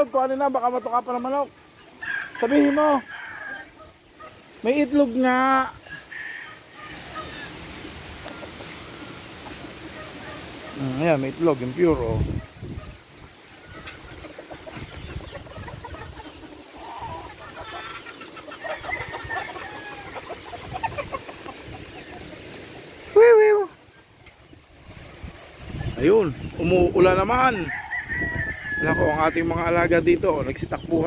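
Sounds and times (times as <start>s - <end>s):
chickens clucking: 0.0s - 31.0s
distant rooster crowing: 2.0s - 4.3s, 5.9s - 7.6s, 18.5s - 20.4s, 27.5s - 29.5s.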